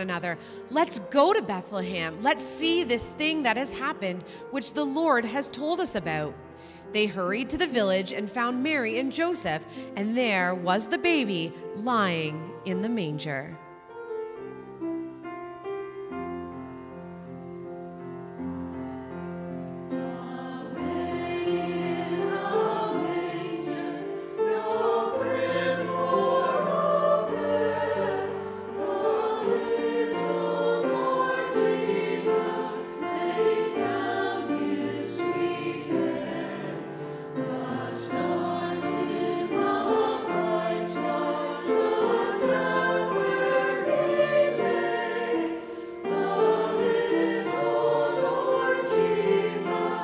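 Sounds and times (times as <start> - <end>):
piano accompaniment: 0.0 - 50.0
choir singing: 19.1 - 50.0.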